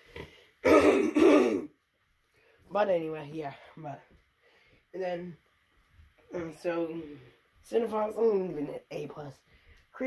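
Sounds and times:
person coughing: 0.6 - 1.7.

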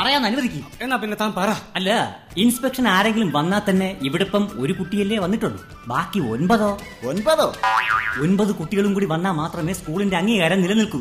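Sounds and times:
springy boing sound effects: 7.6 - 8.4
warbling sound effect: 7.6 - 8.4.

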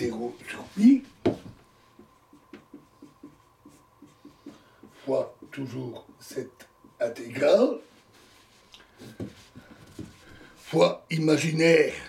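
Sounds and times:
marker pen on whiteboard: 0.0 - 10.5.

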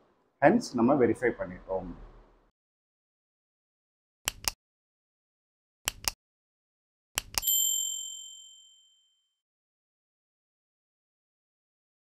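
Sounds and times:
mouse clicks: 4.3 - 4.6, 5.9 - 6.2, 7.2 - 7.4
notification bell ding: 7.4 - 9.3.

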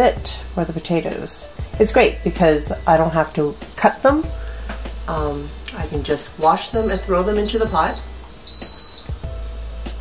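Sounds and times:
high electronic beeps: 6.4 - 9.2.

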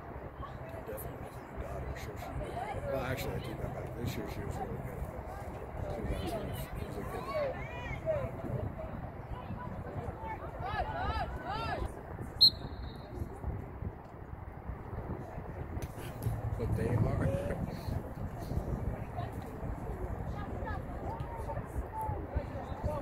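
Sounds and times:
steady crowd murmur: 0.0 - 23.0
referee's whistle blast: 12.4 - 13.1.

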